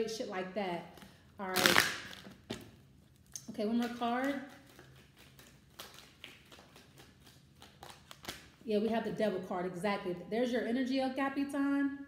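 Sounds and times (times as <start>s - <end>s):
cards being shuffled: 3.8s - 8.6s.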